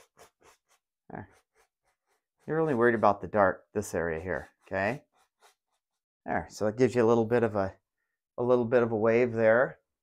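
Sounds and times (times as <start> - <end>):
brush scratching on canvas: 0.0 - 6.1.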